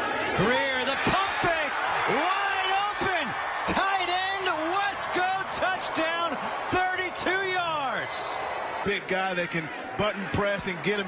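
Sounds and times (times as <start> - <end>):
stadium crowd noise: 0.0 - 11.0
excited commentator speaking: 0.3 - 11.0.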